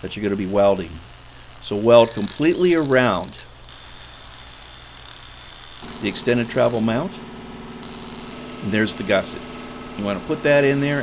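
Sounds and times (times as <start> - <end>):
even hiss: 0.0 - 11.0
steady low hum: 0.0 - 11.0.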